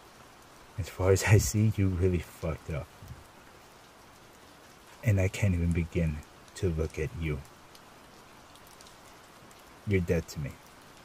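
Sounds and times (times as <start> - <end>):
raindrop ticks: 0.0 - 11.0
steady rain hiss: 0.0 - 11.0
man speaking: 0.8 - 2.9, 5.0 - 7.5, 9.9 - 10.6.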